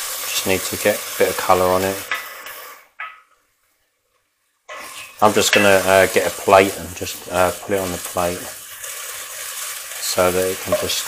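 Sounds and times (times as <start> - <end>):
meat sizzling in oil: 0.0 - 3.0, 4.7 - 11.0.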